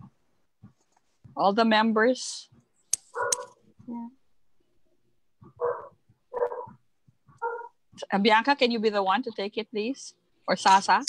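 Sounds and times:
small dog barking: 3.2s - 3.5s, 5.6s - 6.8s, 7.4s - 7.8s.

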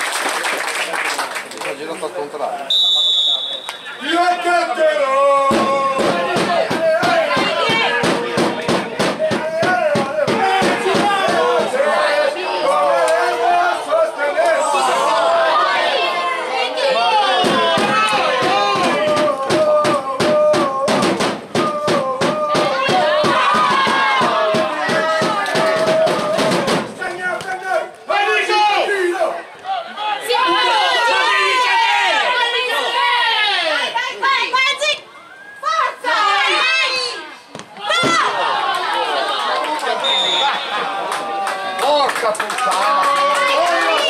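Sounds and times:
voices chanting in unison: 5.5s - 26.9s.

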